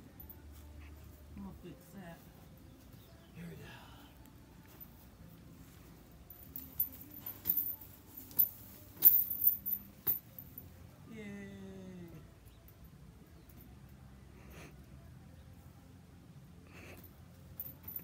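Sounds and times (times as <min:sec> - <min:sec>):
hammock chains clinking: 0:00.0 - 0:01.4, 0:04.4 - 0:10.9, 0:16.7 - 0:18.0.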